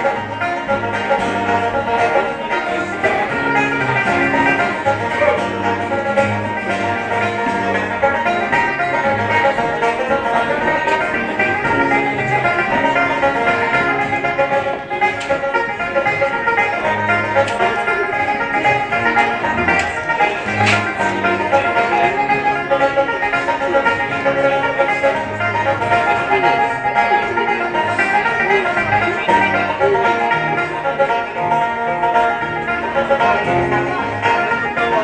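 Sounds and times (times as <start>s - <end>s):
banjo melody: 0.0s - 35.0s.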